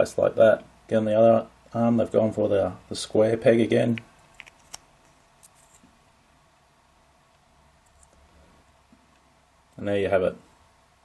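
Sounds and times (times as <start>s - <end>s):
resin model parts clicking: 3.9s - 4.8s.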